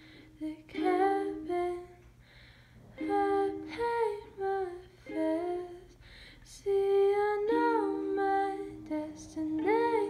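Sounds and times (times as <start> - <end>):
woman humming melody: 6.6 - 10.0.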